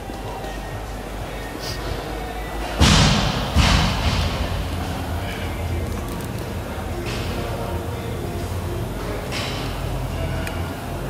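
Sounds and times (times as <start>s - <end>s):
heavy thuds with echo: 0.2s - 8.3s.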